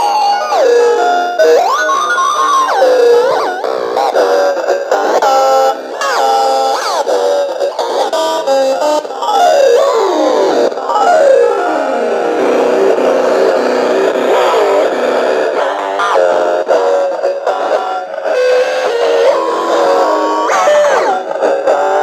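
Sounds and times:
glitchy electronic toy guitar tones: 0.0 - 22.0.

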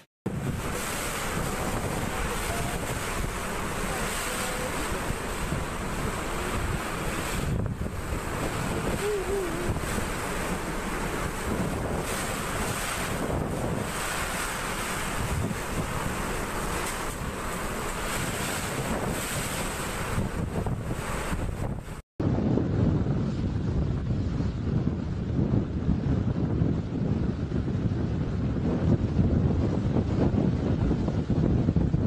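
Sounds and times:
gusts buffeting microphone: 0.0 - 32.0
strong wind and heavy rain: 0.0 - 32.0.

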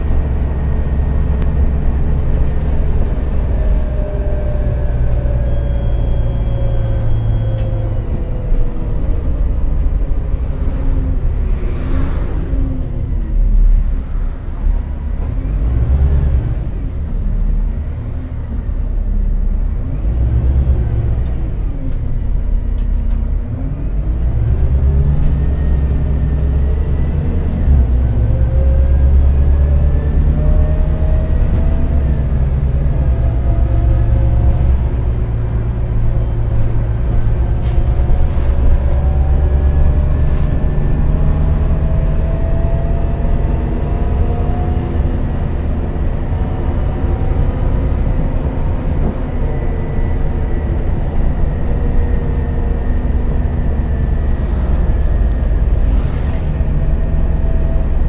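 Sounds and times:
bus engine and road rumble: 0.0 - 58.0
drivetrain whine: 19.4 - 58.0.

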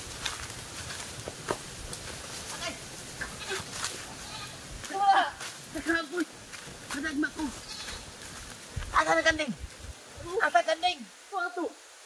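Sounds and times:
goat bleating: 2.5 - 6.1, 7.0 - 8.2.

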